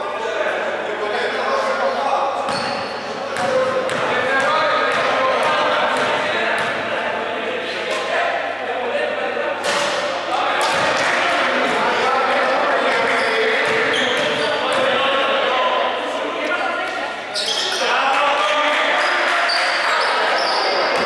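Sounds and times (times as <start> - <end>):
players' voices in hall: 0.0 - 21.0.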